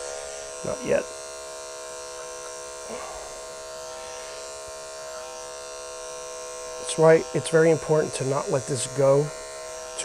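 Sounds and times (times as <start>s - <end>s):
electric clippers buzzing: 0.0s - 10.0s.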